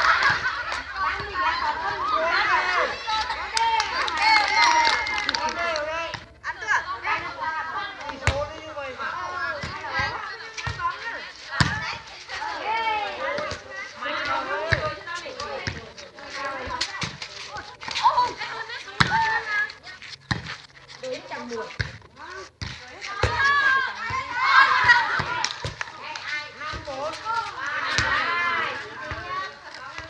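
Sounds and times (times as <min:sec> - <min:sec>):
women calling out and chattering: 0:00.0 - 0:05.6, 0:06.2 - 0:30.0
hands slapping volleyball: 0:24.7 - 0:26.9.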